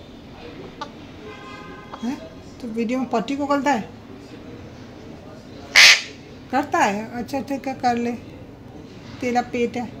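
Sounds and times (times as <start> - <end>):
parakeet squawk: 5.8 - 6.2.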